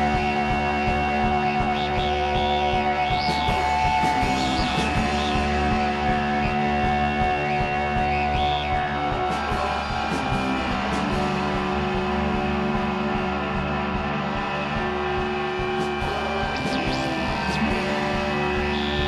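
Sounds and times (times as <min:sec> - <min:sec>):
rock band playing live: 0:00.0 - 0:19.0.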